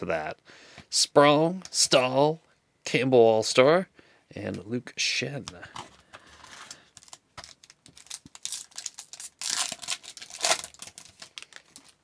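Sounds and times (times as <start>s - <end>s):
card pack wrapper tearing: 6.4s - 12.0s.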